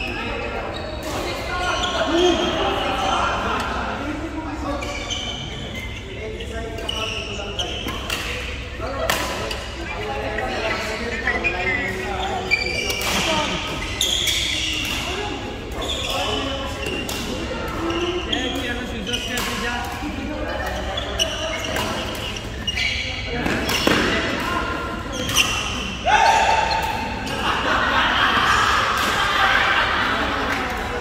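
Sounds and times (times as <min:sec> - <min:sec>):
shoes squeaking on wooden floor: 0:20.8 - 0:24.1
racket hitting shuttlecock: 0:23.4 - 0:24.5.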